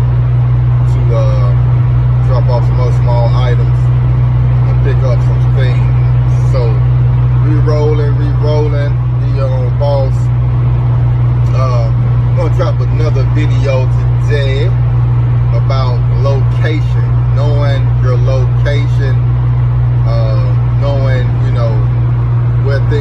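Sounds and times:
loud steady low hum: 0.0s - 23.0s
man talking: 0.8s - 4.0s, 4.6s - 10.3s, 11.4s - 14.9s, 15.5s - 19.2s, 20.0s - 22.0s, 22.6s - 23.0s.

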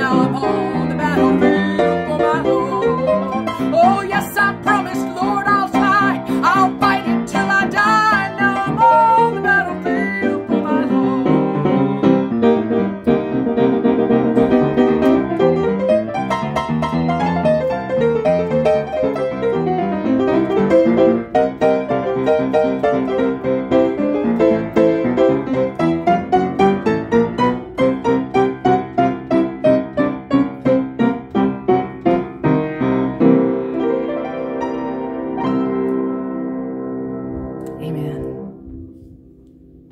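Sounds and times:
gospel piano playing: 0.0s - 39.9s.

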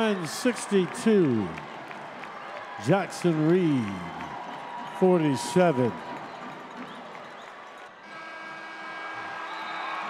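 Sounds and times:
crowd noise: 0.0s - 8.2s.

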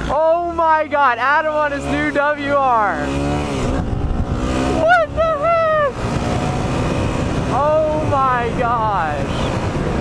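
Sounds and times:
motorcycle engine running: 0.0s - 10.0s
wind rushing over microphone: 2.9s - 10.0s
person shouting: 4.7s - 6.0s, 7.5s - 9.3s.

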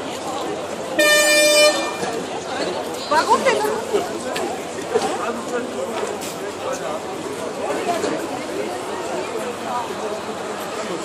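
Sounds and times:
crowd chatter: 0.0s - 11.0s
horn blaring: 1.0s - 2.2s.

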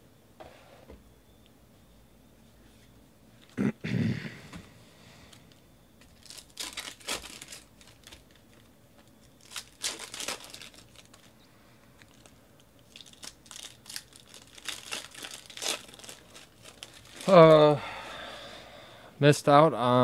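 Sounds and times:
foil wrappers tearing and crinkling: 6.1s - 11.4s, 12.0s - 17.6s.

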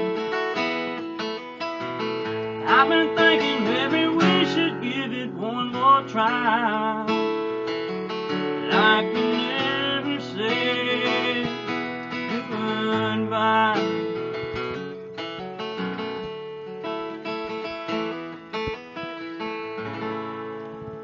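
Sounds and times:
acoustic guitar strummed: 0.0s - 21.0s
man singing long notes: 2.6s - 7.2s, 8.5s - 14.2s.

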